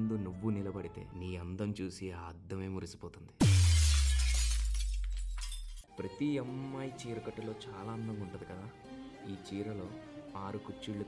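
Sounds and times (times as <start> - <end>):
glass shattering crash: 3.4 - 5.9.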